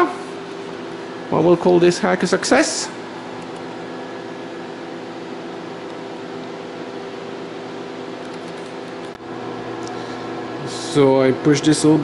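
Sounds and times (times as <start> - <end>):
cooling fans whirring and humming: 0.0 - 12.0.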